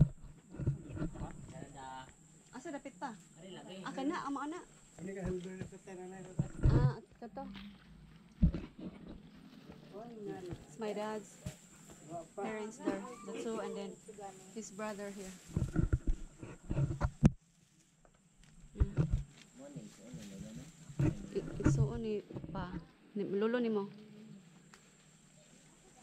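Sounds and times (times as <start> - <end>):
people talking indistinctly: 1.1 - 7.8, 18.8 - 24.4
low knocks on microphone: 5.2 - 7.0.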